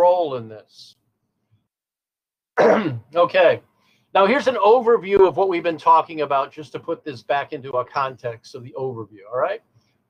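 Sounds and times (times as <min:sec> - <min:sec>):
man clearing his throat: 0:02.6 - 0:03.2.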